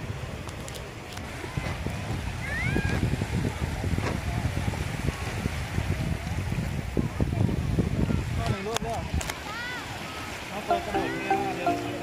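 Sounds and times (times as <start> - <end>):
wind buffeting microphone: 0.0 - 10.5
small waves washing on beach: 0.0 - 12.0.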